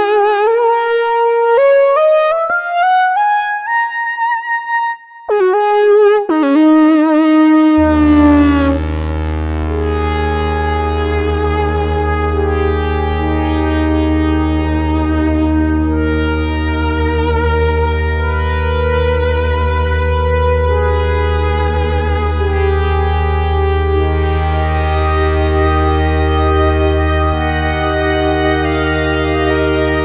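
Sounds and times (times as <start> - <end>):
synthesizer lead note: 0.7 - 30.0
deep synth bass note: 5.3 - 30.0.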